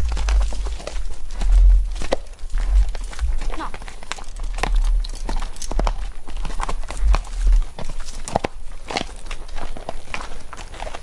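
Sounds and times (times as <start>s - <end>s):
low rumble: 0.0s - 8.0s
hooves clip-clopping on dirt: 0.0s - 11.0s.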